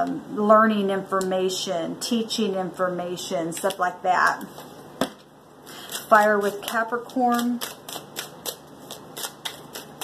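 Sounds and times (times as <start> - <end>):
cards being shuffled: 5.8 - 10.0.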